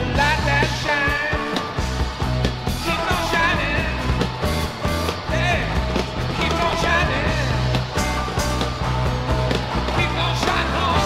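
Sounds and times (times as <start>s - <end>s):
bass line: 0.0s - 11.0s
drums steady beat: 0.0s - 11.0s.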